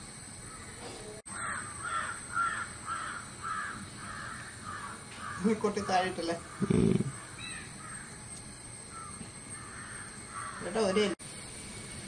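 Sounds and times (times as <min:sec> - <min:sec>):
bird repeated calls: 0:00.5 - 0:08.3, 0:08.9 - 0:11.2.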